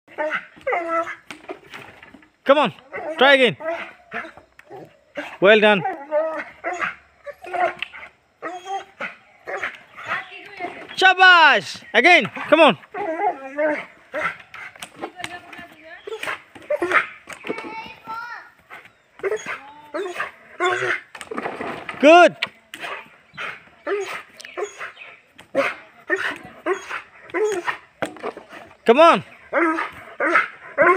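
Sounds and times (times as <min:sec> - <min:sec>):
dog yelping: 0:00.1 - 0:01.3, 0:02.8 - 0:10.3, 0:16.0 - 0:17.3, 0:19.2 - 0:21.1, 0:22.9 - 0:27.9
knocks and clicks of swinging ball: 0:14.4 - 0:18.0.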